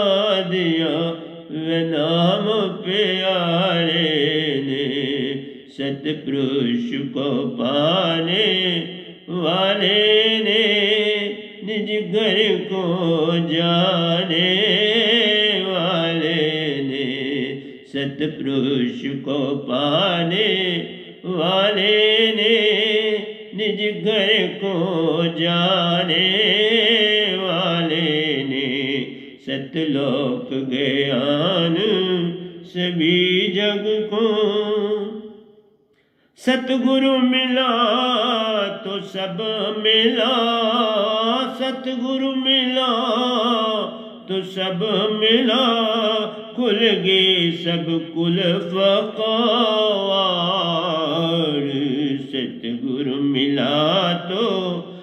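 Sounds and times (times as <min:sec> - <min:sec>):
man singing: 0:00.0 - 0:35.6, 0:36.4 - 0:55.0.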